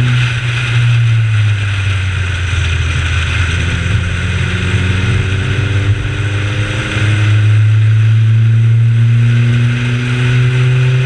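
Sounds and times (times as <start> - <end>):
race car engine running hard: 0.0 - 11.0
road and wind noise: 0.0 - 11.0.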